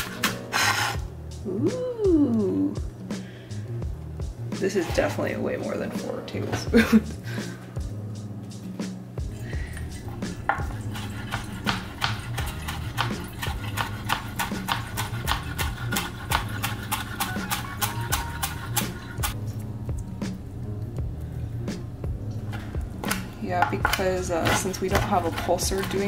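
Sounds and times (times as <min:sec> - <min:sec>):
background music: 0:00.0 - 0:26.0
knife chopping on cutting board: 0:10.5 - 0:19.4, 0:23.0 - 0:26.0.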